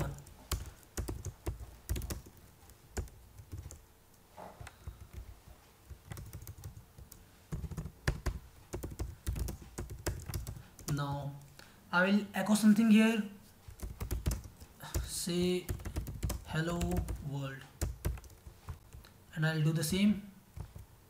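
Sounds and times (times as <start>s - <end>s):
typing on keyboard: 0.0s - 3.8s, 4.6s - 11.0s, 13.7s - 19.0s.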